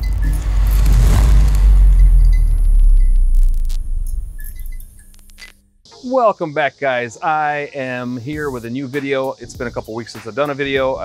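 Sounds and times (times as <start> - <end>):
deep rumble: 0.0 - 5.5
scattered clicks: 2.2 - 5.6.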